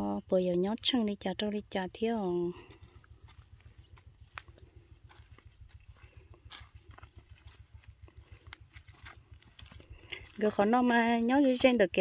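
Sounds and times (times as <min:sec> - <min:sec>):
low rumble: 0:02.4 - 0:10.9
footsteps on dirt path: 0:02.4 - 0:12.0.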